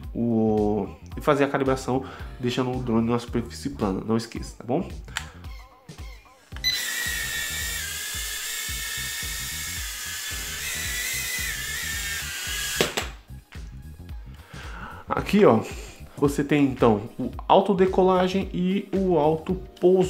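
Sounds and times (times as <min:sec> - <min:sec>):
soft background music: 0:00.0 - 0:20.0
quadcopter motors whining: 0:06.6 - 0:13.2.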